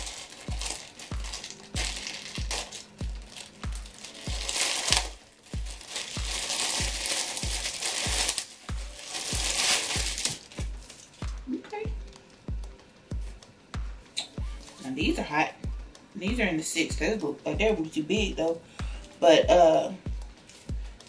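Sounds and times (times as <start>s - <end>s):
plastic packaging crinkling: 0.0s - 11.4s
background music with bass beat: 0.0s - 21.0s.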